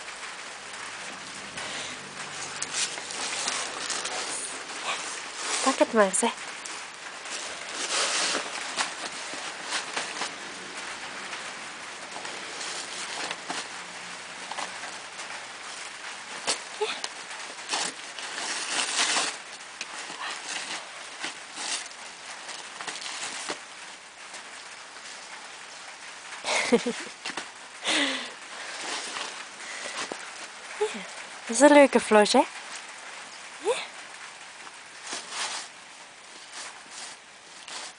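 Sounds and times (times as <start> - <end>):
paper crackling and tearing: 0.6 - 25.8, 26.6 - 31.5, 34.6 - 37.9.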